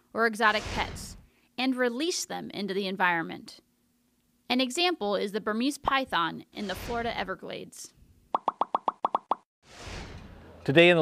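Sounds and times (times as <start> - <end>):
short popping sound effects: 8.3 - 9.4.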